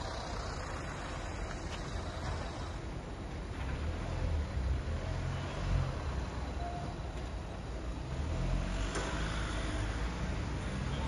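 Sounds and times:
urban background rumble: 0.0 - 11.0.

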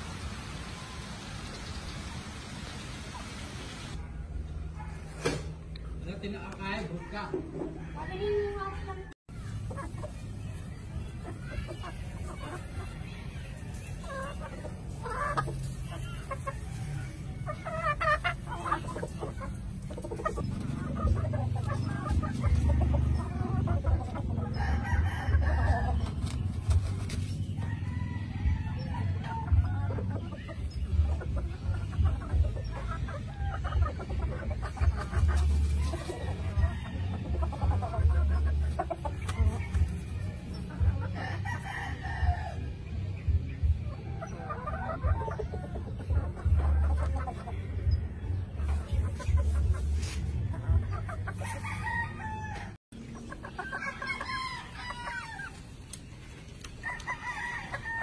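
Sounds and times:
rooster crowing and clucking: 6.6 - 10.2, 11.4 - 43.0, 44.3 - 55.9, 56.6 - 58.0.

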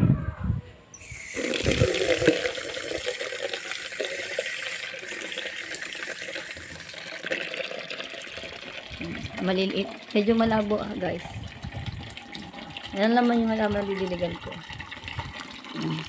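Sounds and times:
water pouring onto plants: 1.1 - 16.0.

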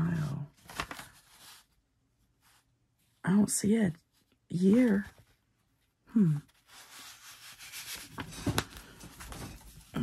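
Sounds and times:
paper sliding into envelope: 6.7 - 9.8.

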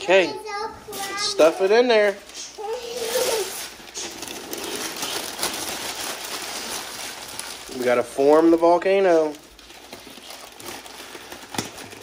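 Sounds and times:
newspaper crumpling: 0.9 - 12.0.

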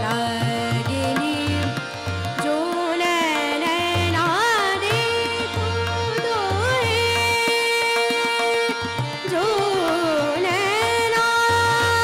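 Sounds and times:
tabla strokes: 0.0 - 12.0
tanpura drone: 0.0 - 12.0
woman singing: 0.0 - 12.0.

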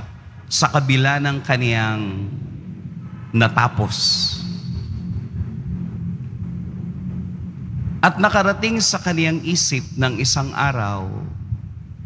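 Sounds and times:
steady low drone: 0.0 - 12.0.

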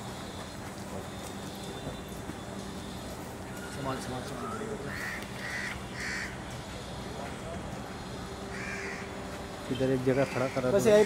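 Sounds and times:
steady low hum: 0.0 - 11.0
crow cawing: 4.4 - 6.4, 8.5 - 9.2, 10.1 - 11.0.

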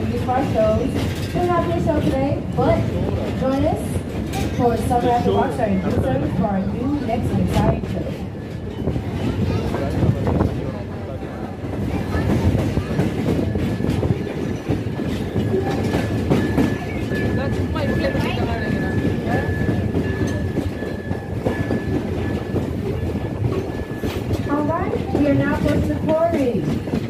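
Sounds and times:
wheels clattering over rails: 0.0 - 10.8, 11.5 - 27.0
train rumbling along track: 0.0 - 27.0.

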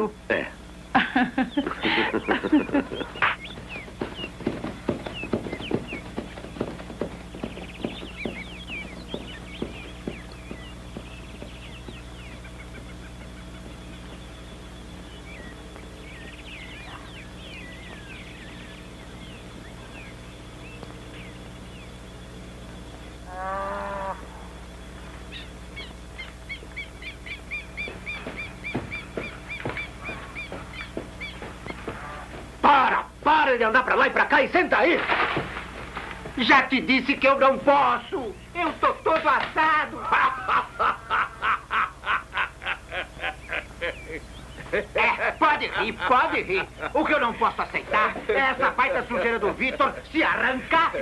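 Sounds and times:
birds chirping: 0.0 - 51.0
steady low hum: 0.0 - 51.0
loud bird call: 0.8 - 33.2, 37.2 - 51.0.

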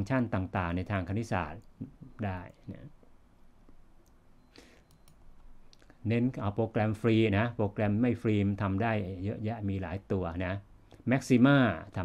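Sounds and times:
low room noise: 0.0 - 12.0
computer mouse clicks: 4.8 - 5.9.

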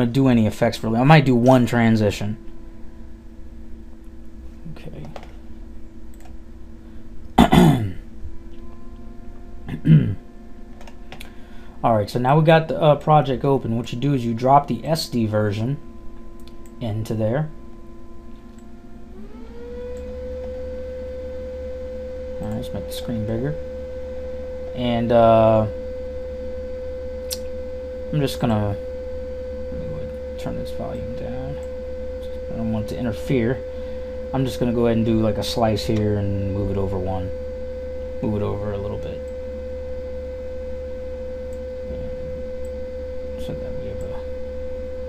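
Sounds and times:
low hum: 0.0 - 45.0
pure whining tone: 0.0 - 45.0.

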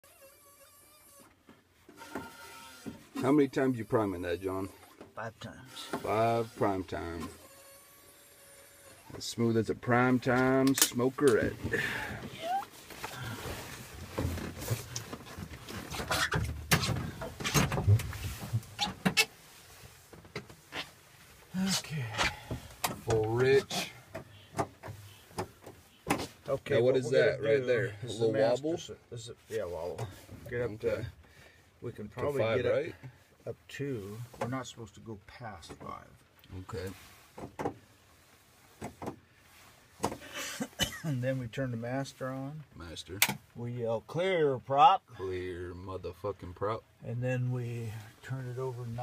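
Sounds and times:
cockpit controls clicking and knocking: 43.2 - 43.5.

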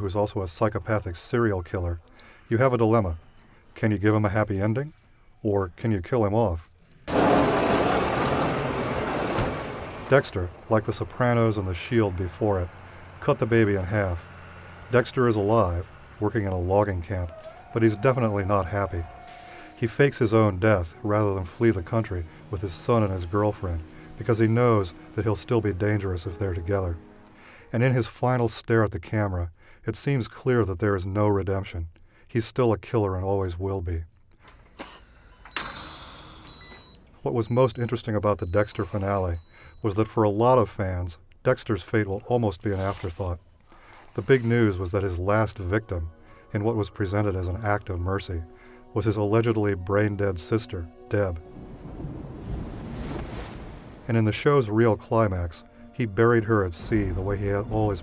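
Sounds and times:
heavy truck engine rumbling: 7.1 - 27.7, 55.7 - 58.0.

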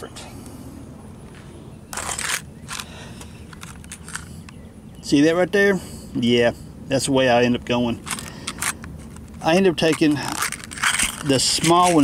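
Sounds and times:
handling rustle: 1.9 - 4.5, 7.9 - 12.0
plastic pack clicks and crinkles: 8.0 - 12.0.

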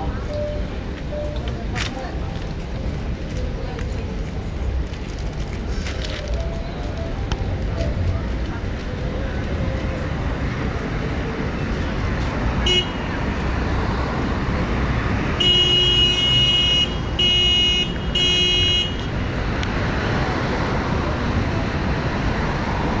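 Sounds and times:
street traffic: 0.0 - 23.0
vehicle horn tooting: 12.6 - 13.2, 15.4 - 19.1.

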